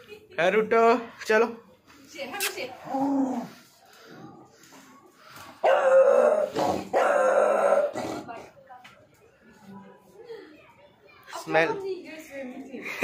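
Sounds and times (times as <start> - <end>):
dog barking and baying: 5.6 - 8.0.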